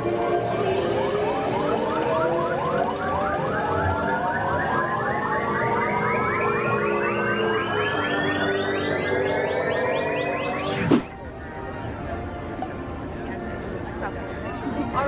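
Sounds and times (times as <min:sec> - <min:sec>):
synthesized tone pulsing and rising: 0:00.0 - 0:11.3
low held synth tones: 0:00.0 - 0:11.4.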